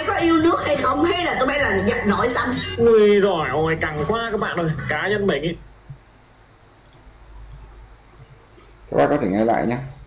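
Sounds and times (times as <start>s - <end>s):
low steady hum: 0.0s - 10.0s
computer mouse clicks: 6.8s - 8.7s.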